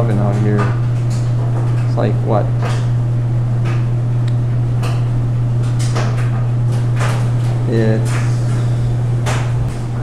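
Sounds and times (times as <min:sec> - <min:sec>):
laundry machine humming: 0:00.0 - 0:10.0.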